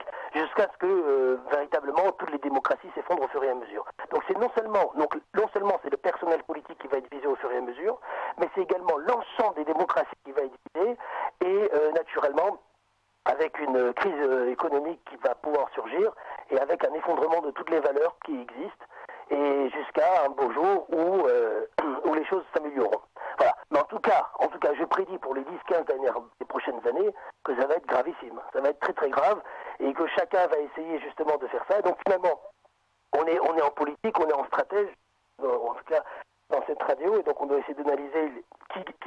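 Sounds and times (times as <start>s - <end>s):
man talking on radio: 0.0s - 12.6s, 13.3s - 39.0s.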